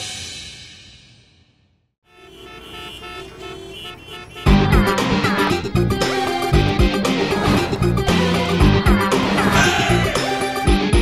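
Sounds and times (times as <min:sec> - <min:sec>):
vehicle horns honking: 0:02.0 - 0:07.7
city street traffic: 0:02.0 - 0:11.0.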